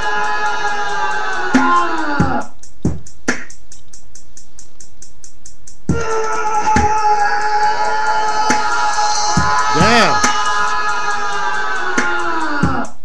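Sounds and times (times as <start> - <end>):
fast hi-hat: 0.0 - 13.0.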